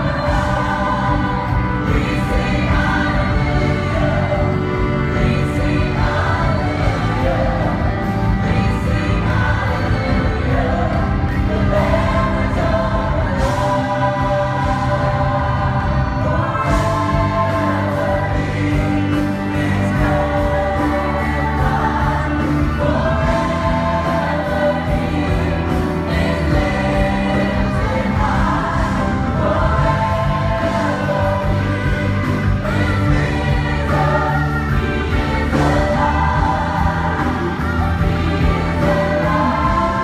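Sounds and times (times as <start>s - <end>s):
choir singing: 0.0s - 40.0s
female vocalists singing: 0.0s - 40.0s
guitar: 0.0s - 40.0s
keyboard: 0.0s - 40.0s.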